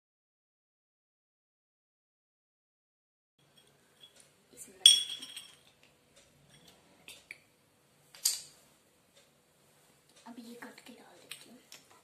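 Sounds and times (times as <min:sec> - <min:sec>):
small metal utensil clink: 0:04.8 - 0:05.6.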